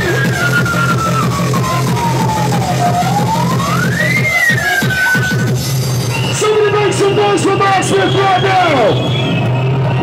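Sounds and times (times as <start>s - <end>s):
siren-like synth tone sweeping: 0.0s - 6.1s
steady bass pulse: 0.0s - 7.8s
electronic dance music: 0.0s - 10.0s.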